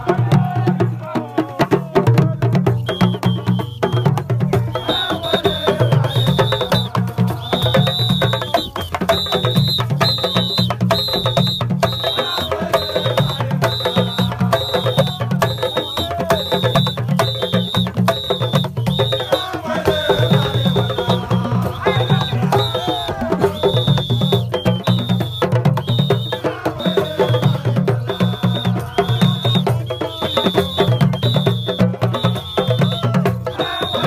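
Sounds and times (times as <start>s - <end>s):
drum and percussion music: 0.0s - 34.0s.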